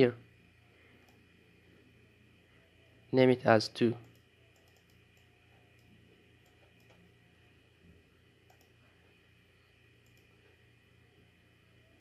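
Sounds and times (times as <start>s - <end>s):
faint room hum: 0.0s - 12.0s
computer mouse clicks: 1.0s - 1.3s, 4.0s - 7.1s, 8.4s - 8.8s, 10.0s - 10.6s.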